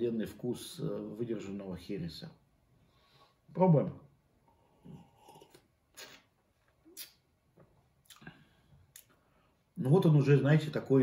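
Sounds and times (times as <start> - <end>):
man sipping a drink: 4.5 - 7.2
lip and tongue smacks: 5.4 - 7.3, 8.0 - 8.3.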